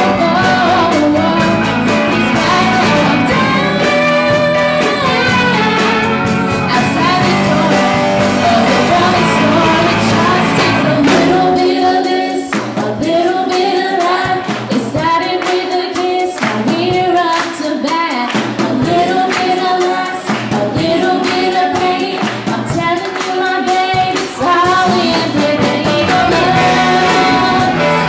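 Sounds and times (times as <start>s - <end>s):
drum kit beat: 0.0s - 28.0s
electric guitar: 0.0s - 28.0s
woman singing: 0.0s - 28.0s.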